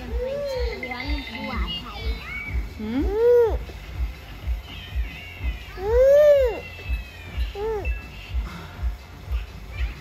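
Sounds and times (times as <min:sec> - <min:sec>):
background music with beat: 0:00.0 - 0:10.0
faint high cries: 0:04.7 - 0:08.4.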